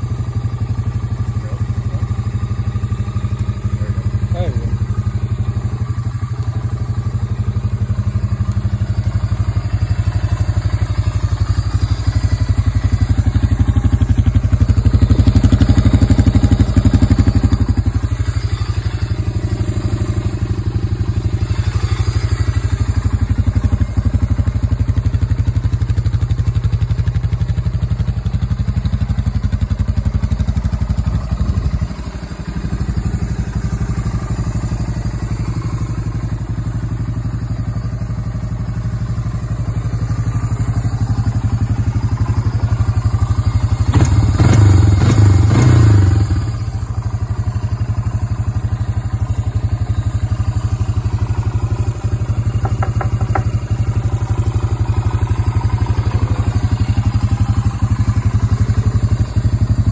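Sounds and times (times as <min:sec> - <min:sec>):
atv engine idling: 0:00.0 - 0:59.9.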